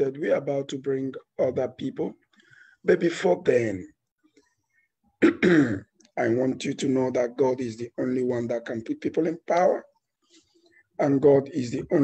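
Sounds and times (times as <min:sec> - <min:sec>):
man clearing his throat: 0:05.2 - 0:05.9.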